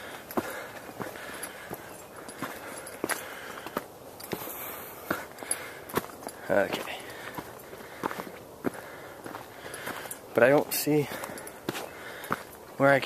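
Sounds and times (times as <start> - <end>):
footsteps on rocky dirt trail: 0.0 - 13.0.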